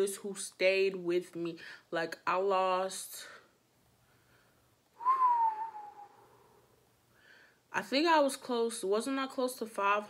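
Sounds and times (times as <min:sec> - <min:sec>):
breathy whistled note: 0:05.0 - 0:06.6.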